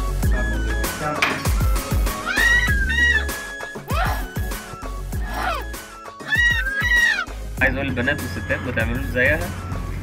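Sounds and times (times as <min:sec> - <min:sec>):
music with deep bass and beat: 0:00.0 - 0:10.0.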